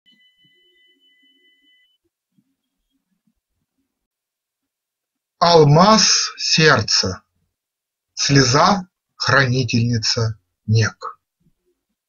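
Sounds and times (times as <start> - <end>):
faint high two-note tone: 0.1 - 3.0.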